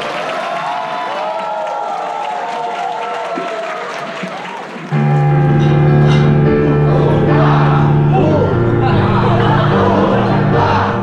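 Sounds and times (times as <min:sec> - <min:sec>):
audience applauding: 0:00.0 - 0:05.8
voices calling out: 0:05.0 - 0:11.0.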